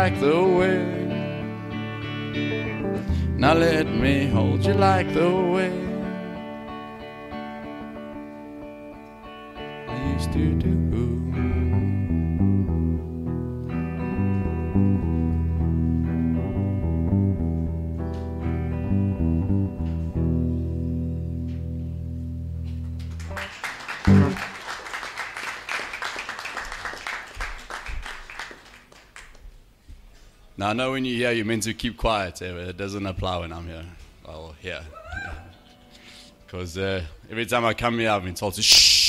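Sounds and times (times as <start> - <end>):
guitar playing: 0.0 - 24.6
applause: 22.9 - 29.6.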